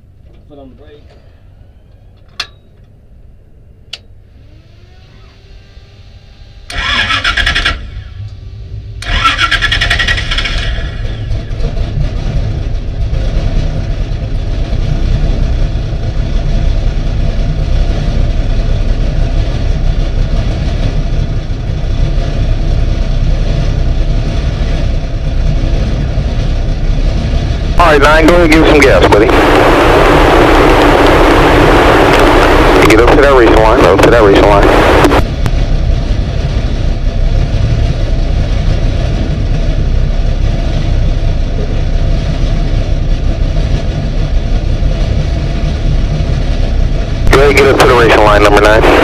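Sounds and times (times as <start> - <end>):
car engine starting and idling: 0.0 - 49.0.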